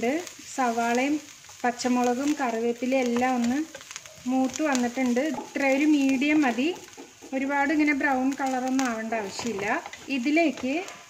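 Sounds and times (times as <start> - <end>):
woman talking: 0.0 - 3.7, 4.3 - 11.0
onions sizzling in oil: 0.0 - 11.0
spatula stirring in frying pan: 0.0 - 11.0.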